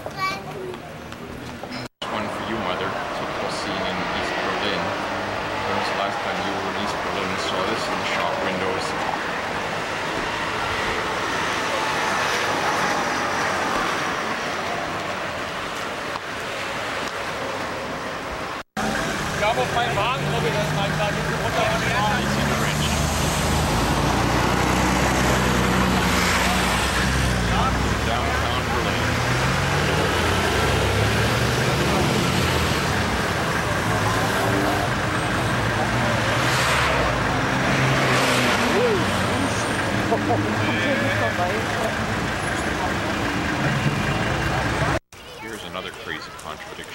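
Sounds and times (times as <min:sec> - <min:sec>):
people talking: 0:00.0 - 0:00.9, 0:02.0 - 0:05.0, 0:05.6 - 0:09.3, 0:19.3 - 0:23.2, 0:25.6 - 0:29.2, 0:38.6 - 0:43.1, 0:45.2 - 0:46.9
car engines running: 0:00.0 - 0:45.0.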